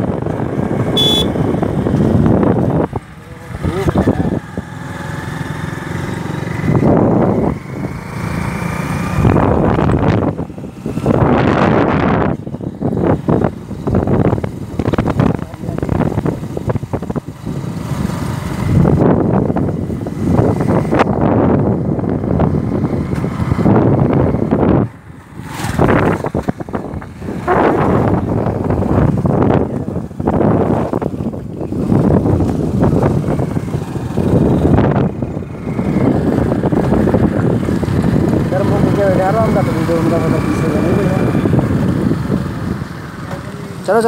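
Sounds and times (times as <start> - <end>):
wind buffeting microphone: 0.0 - 5.0, 6.3 - 44.0
motorcycle riding: 0.0 - 44.0.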